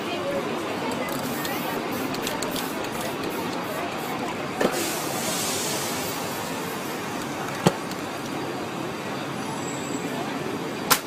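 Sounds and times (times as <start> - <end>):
aerosol spray can hissing: 1.1 - 7.2.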